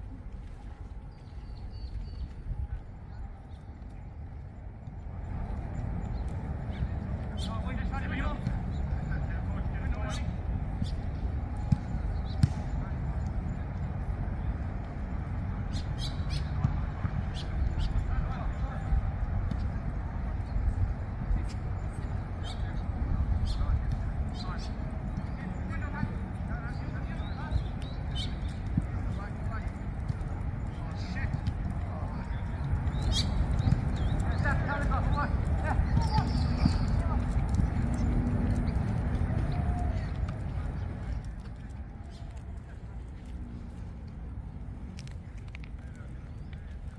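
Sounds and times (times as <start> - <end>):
distant voices: 0.0 - 46.9
steady low rumble: 0.0 - 46.9
birds chirping: 0.4 - 46.9
footsteps: 23.7 - 46.9.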